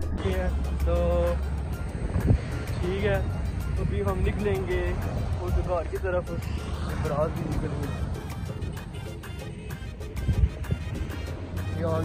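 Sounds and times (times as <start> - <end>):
cars driving past rumbling: 0.0 - 9.4
music playing: 0.0 - 12.0.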